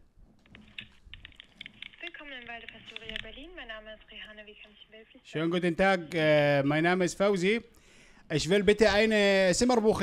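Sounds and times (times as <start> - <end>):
faint irregular clicks: 0.4 - 3.4.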